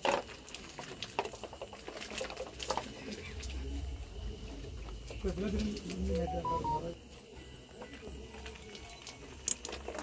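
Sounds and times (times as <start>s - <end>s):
low background murmur: 1.1s - 10.0s.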